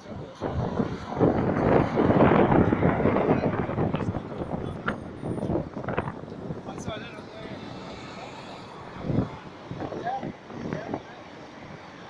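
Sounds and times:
traffic: 0.0 - 12.0
wind: 0.0 - 12.0.

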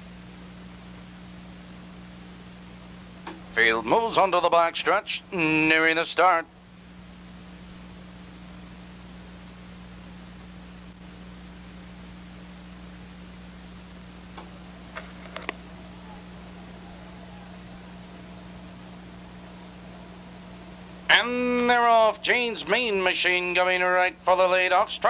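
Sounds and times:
low even hum: 0.0 - 25.0
steady hiss: 0.0 - 25.0
faint clicks: 14.3 - 15.7.

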